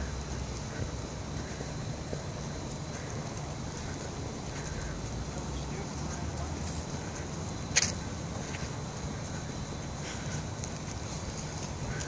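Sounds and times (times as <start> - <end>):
faint outdoor hiss: 0.0 - 12.0.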